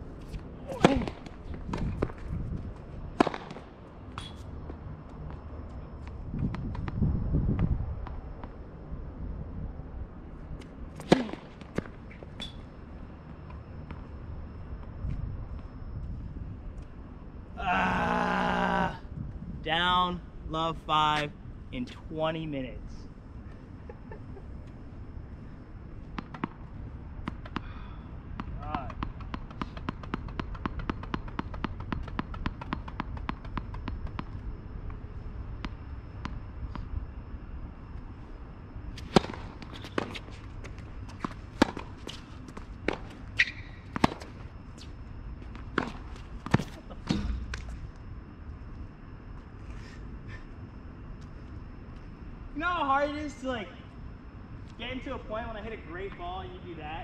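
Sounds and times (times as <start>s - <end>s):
tennis ball struck by rackets: 3.2s - 3.6s, 11.0s - 12.6s, 39.0s - 40.2s, 41.2s - 42.2s, 42.9s - 44.4s
ball bouncing on hard court: 26.1s - 26.6s, 28.4s - 34.4s, 42.9s - 44.3s.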